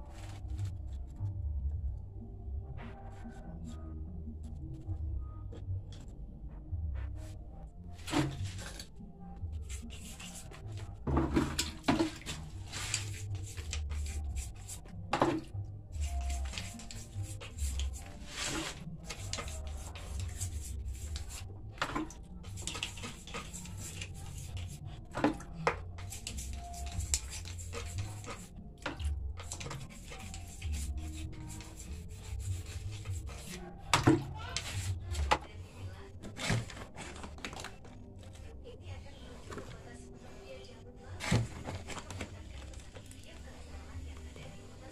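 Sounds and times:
hand scraping wet cement: 9.6s - 14.9s, 16.0s - 35.4s, 36.2s - 37.9s.

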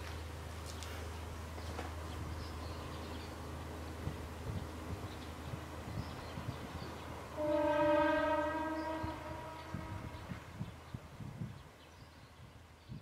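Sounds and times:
low engine hum: 0.0s - 7.4s
train horn: 7.3s - 10.4s.

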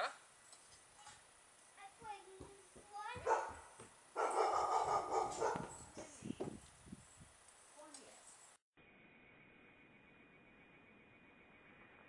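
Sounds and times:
dog barking: 3.2s - 5.8s.

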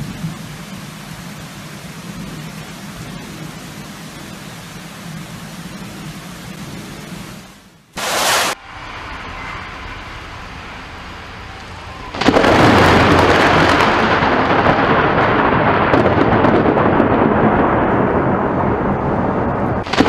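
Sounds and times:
rain hiss: 0.0s - 20.0s
thunderclap rumbling: 8.0s - 20.0s.

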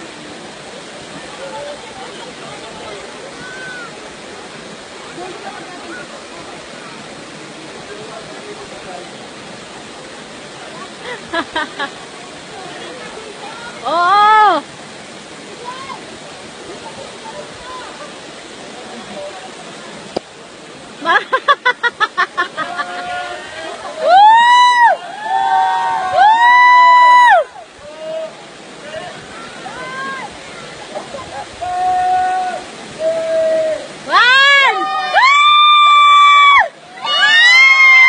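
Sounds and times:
waterfall rushing into a pool: 0.0s - 38.0s
faint voices: 0.1s - 21.1s, 27.4s - 35.2s.

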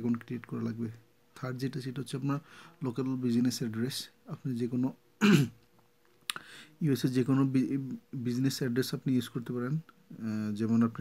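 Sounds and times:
man clearing his throat: 5.2s - 5.6s.

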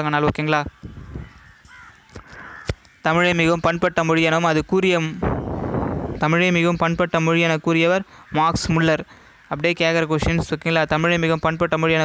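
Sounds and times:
bird calling faintly: 0.7s - 3.8s.

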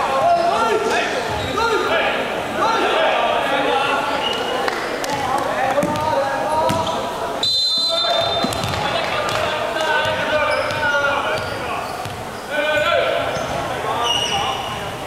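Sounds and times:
voices chattering: 0.0s - 15.0s
referee's whistle: 7.4s - 8.6s
ball bouncing on wooden floor: 8.4s - 9.4s.

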